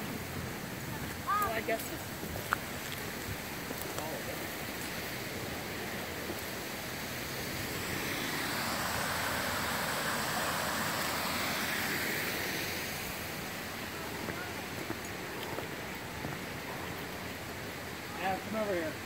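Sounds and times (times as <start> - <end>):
small waterfall rushing: 0.0 - 19.0.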